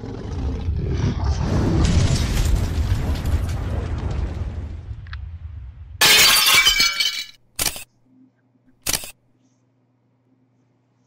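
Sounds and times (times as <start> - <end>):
sharp click: 7.6 - 7.9, 8.8 - 9.2
faint low hum: 7.9 - 11.0.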